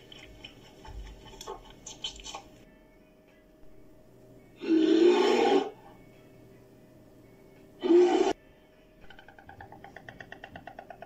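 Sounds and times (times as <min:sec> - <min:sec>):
brown bear call: 0:04.6 - 0:05.8, 0:07.8 - 0:08.4.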